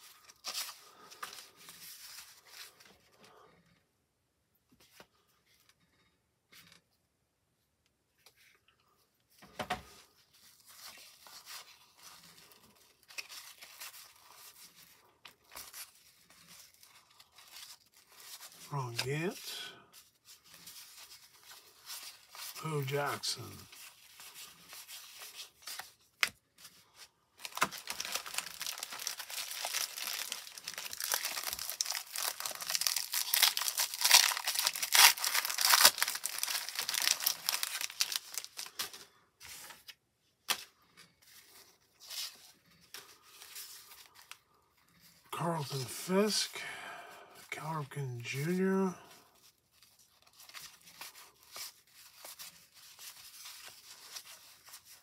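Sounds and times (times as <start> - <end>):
cellophane wrapper crinkling and tearing: 10.1 - 40.0, 49.1 - 55.0
cards being flipped through: 27.4 - 44.3.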